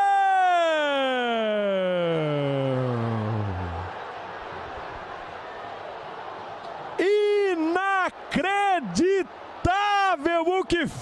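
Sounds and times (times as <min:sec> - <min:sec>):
long vocal cry: 0:00.0 - 0:04.0
stadium crowd noise: 0:00.0 - 0:11.0.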